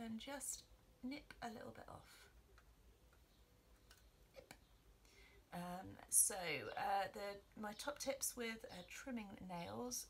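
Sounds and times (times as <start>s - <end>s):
faint sharp clicks: 2.5s - 5.2s.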